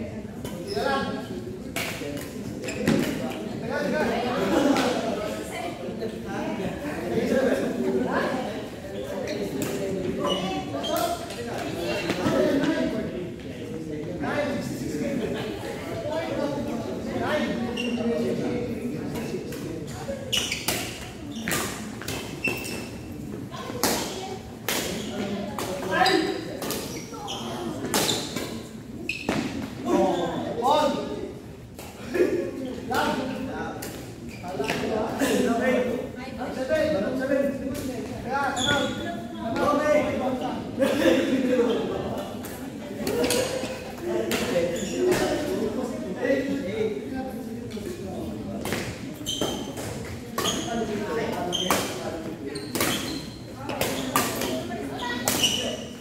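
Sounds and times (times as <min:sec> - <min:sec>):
voices in a hall: 0:00.0 - 0:56.0
shoes squeaking on court floor: 0:00.4 - 0:03.6, 0:08.9 - 0:12.9, 0:17.4 - 0:18.5, 0:19.1 - 0:31.1, 0:32.6 - 0:35.3, 0:38.0 - 0:39.7, 0:41.6 - 0:45.6, 0:48.6 - 0:56.0
racket hitting shuttlecock: 0:55.2 - 0:55.6.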